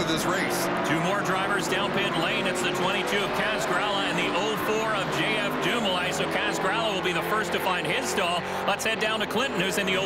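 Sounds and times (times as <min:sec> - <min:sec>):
man commentating: 0:00.0 - 0:10.0
stock car engines: 0:00.0 - 0:10.0.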